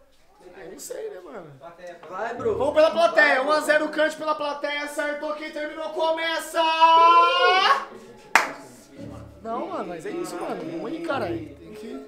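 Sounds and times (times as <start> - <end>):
man shouting: 5.6 - 7.9
sharp clap: 8.4 - 8.6.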